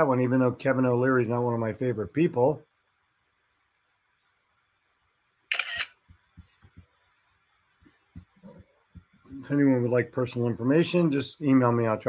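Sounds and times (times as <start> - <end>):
camera shutter click: 5.5 - 6.0
soft low thumps: 7.8 - 9.4.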